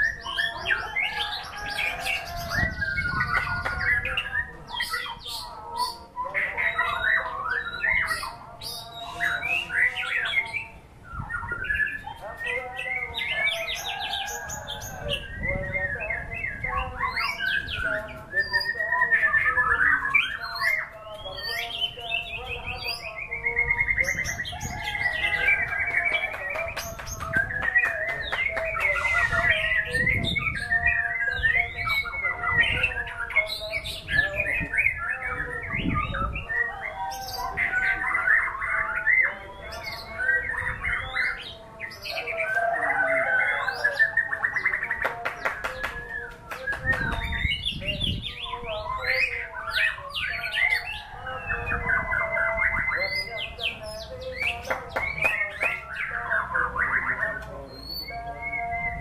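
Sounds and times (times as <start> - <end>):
songbird whistles and trills: 0.0 - 59.0.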